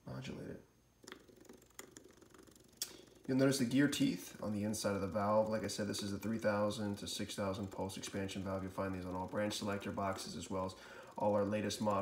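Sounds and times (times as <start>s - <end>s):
stepper motor ticking: 1.0s - 12.0s.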